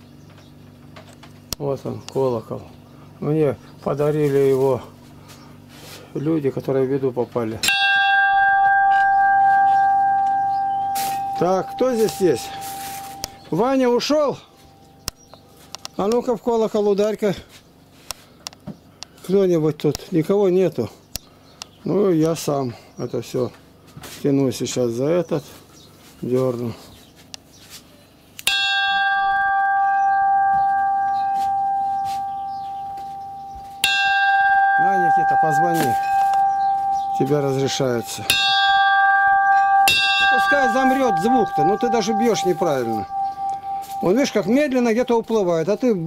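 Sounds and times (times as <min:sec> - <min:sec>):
bell ringing: 0:07.7 - 0:15.1, 0:28.5 - 0:46.0.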